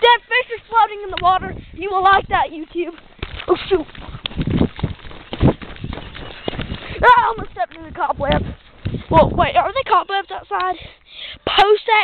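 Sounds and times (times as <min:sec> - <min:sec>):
footsteps on grass and leaves: 0:02.2 - 0:10.4.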